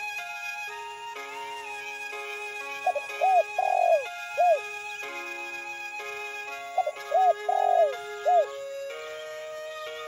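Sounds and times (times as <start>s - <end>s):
soft background music: 0.0s - 10.0s
dove cooing: 2.8s - 4.6s, 6.8s - 8.5s.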